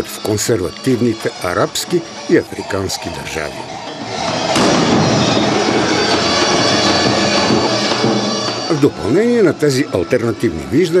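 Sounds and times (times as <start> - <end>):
large bells clanging: 0.0 - 11.0
loud crash: 4.5 - 7.6.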